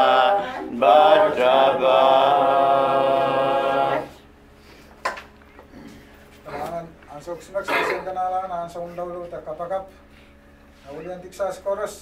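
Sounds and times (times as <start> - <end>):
men singing unaccompanied: 0.0 - 4.2.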